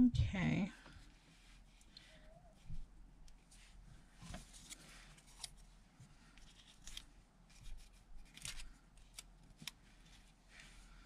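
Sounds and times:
paper rustling: 3.5 - 5.7, 6.3 - 11.0.

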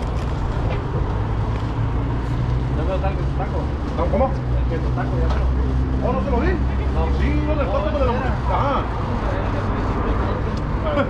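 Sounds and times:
indistinct voices talking: 0.4 - 11.0.

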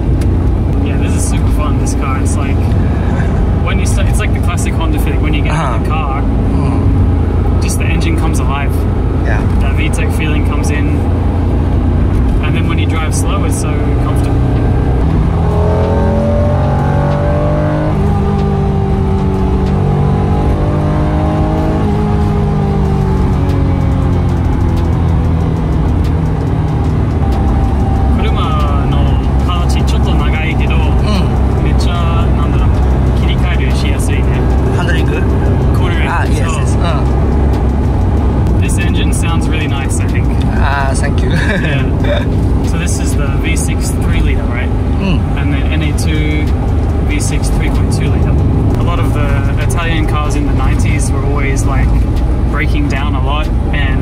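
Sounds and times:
car engine accelerating: 0.0 - 54.0
road noise: 0.0 - 54.0.

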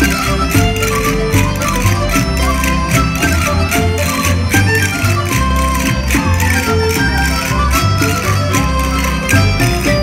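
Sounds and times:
lively folk dance music: 0.0 - 10.0.

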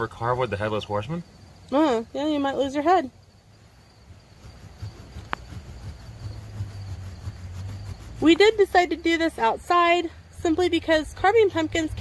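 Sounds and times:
saw rasping through pumpkin: 4.0 - 10.2.

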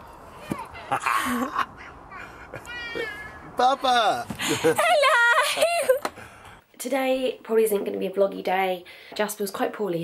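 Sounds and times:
toddler squealing: 2.6 - 3.5.

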